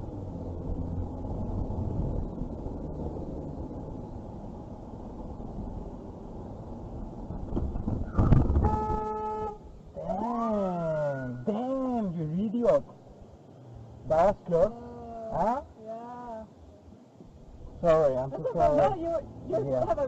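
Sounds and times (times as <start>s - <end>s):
engine and road rumble: 0.0s - 20.0s
car horn honk: 8.6s - 9.7s.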